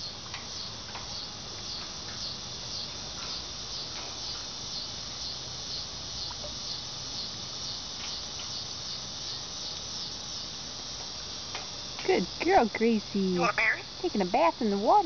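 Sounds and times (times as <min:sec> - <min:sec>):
insects chirping: 0:00.0 - 0:15.0.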